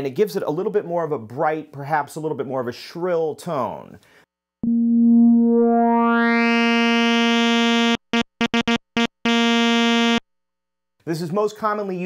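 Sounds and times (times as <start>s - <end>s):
short synthesizer stabs: 4.6s - 10.2s
synthesizer note brightening: 4.6s - 10.2s.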